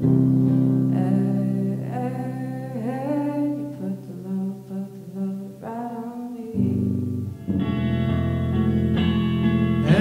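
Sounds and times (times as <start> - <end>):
electric guitar: 0.0 - 4.4, 6.5 - 10.0
woman singing: 0.7 - 7.0.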